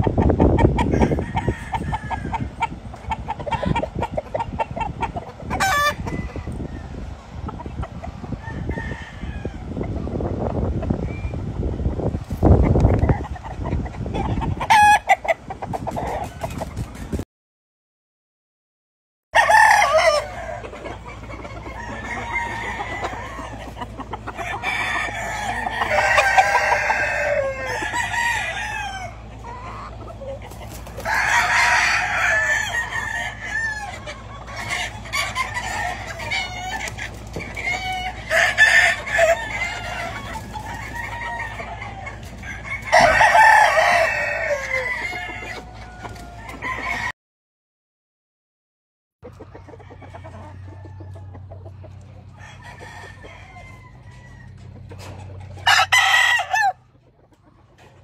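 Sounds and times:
roosters crowing: 0:00.0 - 0:11.8, 0:14.1 - 0:17.0, 0:19.3 - 0:47.1, 0:49.3 - 0:58.0
chickens clucking: 0:00.0 - 0:17.2, 0:19.4 - 0:47.1, 0:49.2 - 0:58.0.

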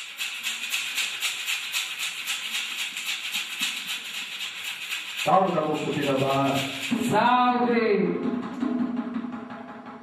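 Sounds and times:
gourd rattle shaken: 0:00.0 - 0:07.9.

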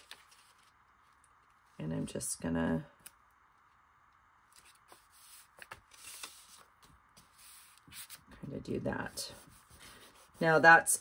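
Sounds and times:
paper rustling: 0:00.0 - 0:01.6, 0:04.5 - 0:08.4.

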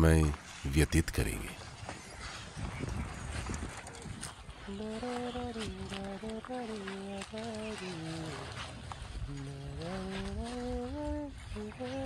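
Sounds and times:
wind rumble on microphone: 0:01.5 - 0:12.0.

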